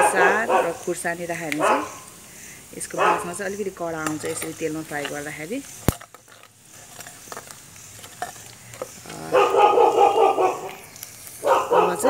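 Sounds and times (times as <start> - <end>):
dog barking: 0.0 - 0.9, 1.6 - 2.1, 2.9 - 3.4, 9.2 - 12.0
spices frying in oil: 0.0 - 9.3, 10.6 - 12.0.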